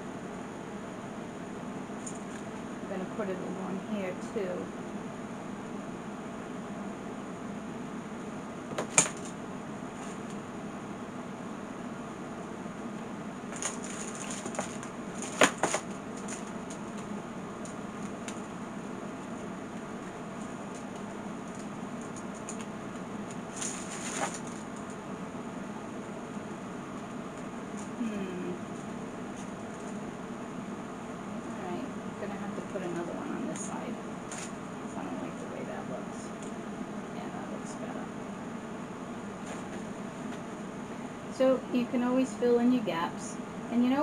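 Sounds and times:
low room hum: 0:00.0 - 0:44.0.

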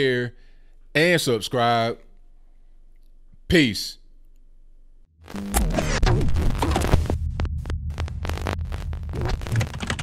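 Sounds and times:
rapid electronic crackles and clicks: 0:05.2 - 0:10.0
deep throbbing hum: 0:05.3 - 0:10.0.

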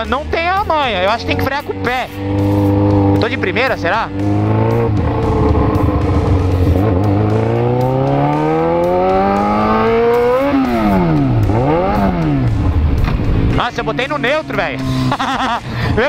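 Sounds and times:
motorcycle engine revving: 0:00.0 - 0:16.0.

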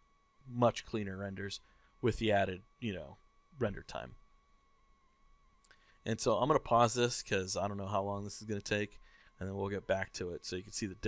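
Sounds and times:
faint high whine: 0:00.0 - 0:11.0.

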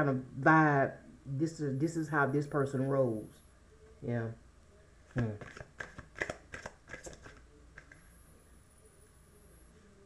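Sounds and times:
cards shuffling: 0:05.1 - 0:08.0.

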